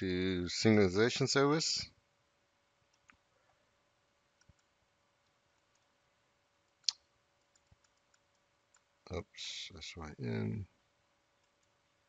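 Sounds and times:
faint steady hum: 0.0s - 12.0s
computer clicks: 4.4s - 5.9s, 6.6s - 8.9s.

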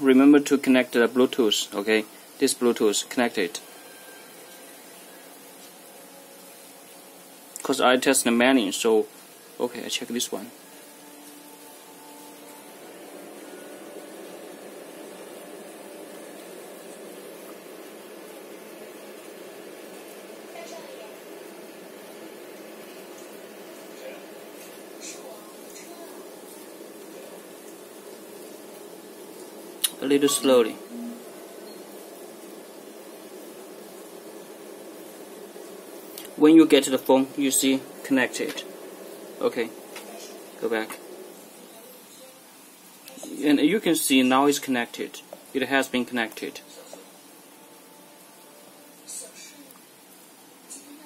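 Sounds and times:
even hiss: 0.0s - 51.0s
faint hum: 0.0s - 51.0s.

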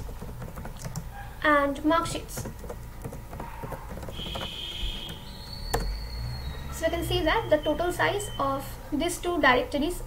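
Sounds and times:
computer keyboard typing: 0.0s - 5.9s.

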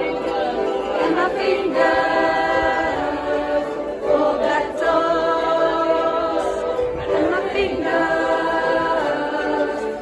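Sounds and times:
choir singing long notes: 0.0s - 10.0s.

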